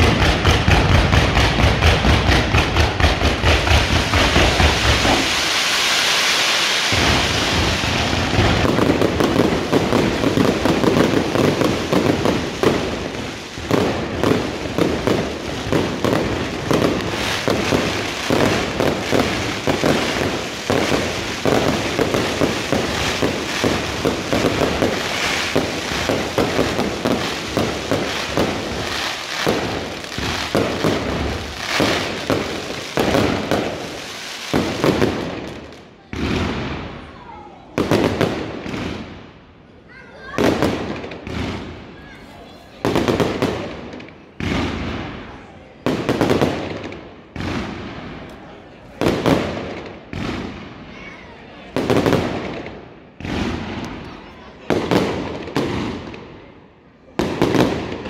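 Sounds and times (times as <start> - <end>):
fireworks crackling bangs: 0.0 - 58.0
hissing rush: 2.8 - 34.5.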